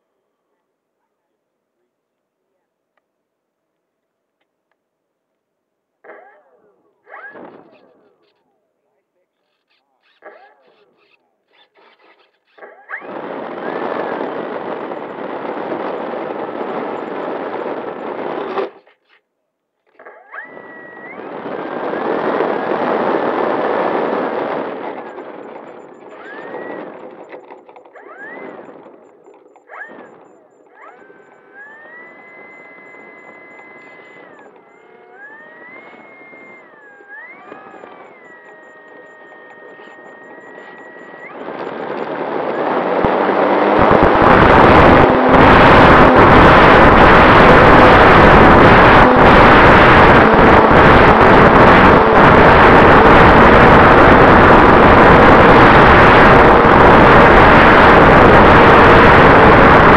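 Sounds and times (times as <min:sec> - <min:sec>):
model airplane motor whining: 0:07.0 - 0:08.5, 0:09.4 - 0:59.9.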